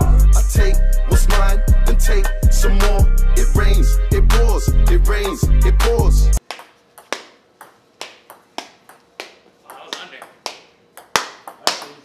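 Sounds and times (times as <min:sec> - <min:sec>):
loud hip-hop music: 0:00.0 - 0:06.4
ping-pong ball clicks: 0:06.4 - 0:12.0.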